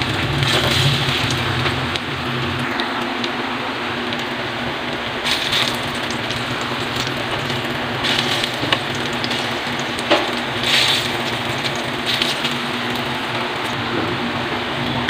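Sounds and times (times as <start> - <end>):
banana slices sizzling in oil: 0.0 - 13.9.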